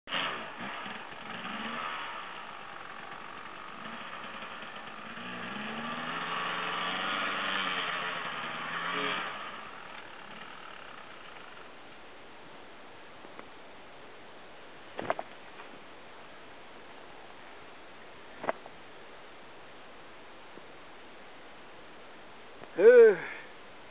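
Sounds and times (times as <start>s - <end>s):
dirt bike engine revving: 0.1s - 11.7s.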